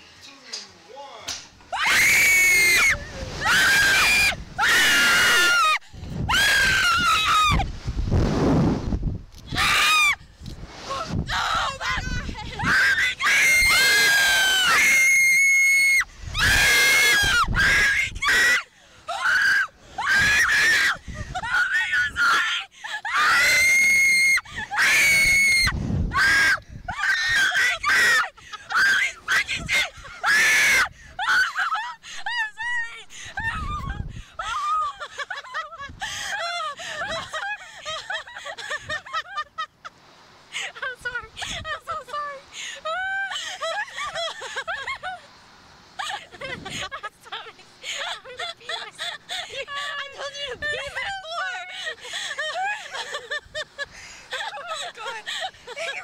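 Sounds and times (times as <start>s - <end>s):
women screaming: 1.7s - 7.7s, 9.5s - 10.2s, 10.9s - 39.5s, 42.8s - 45.2s.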